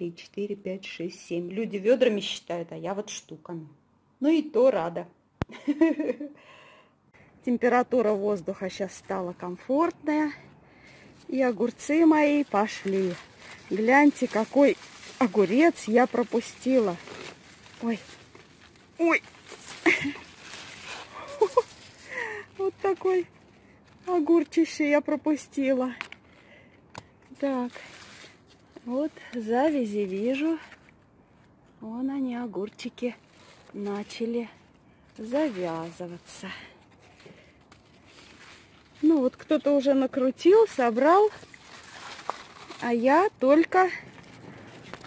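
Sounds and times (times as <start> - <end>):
leaves and vines rustling: 10.8 - 25.8, 27.3 - 30.9, 32.9 - 45.0.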